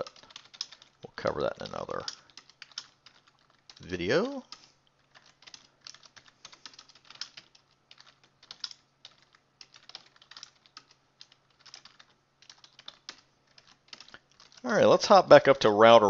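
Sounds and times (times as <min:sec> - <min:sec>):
faint keyboard typing: 0:00.0 - 0:14.9.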